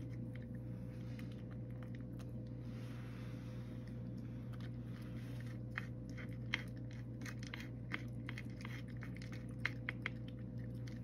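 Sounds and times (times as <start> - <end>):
cat crunching dry kibble: 0.0 - 2.5, 3.8 - 11.0
low hum: 0.0 - 11.0.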